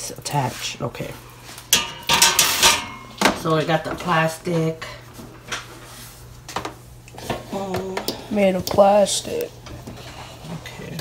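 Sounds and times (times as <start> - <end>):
steady low hum: 0.0 - 11.0
woman speaking: 3.3 - 5.0, 7.5 - 9.5, 10.4 - 11.0.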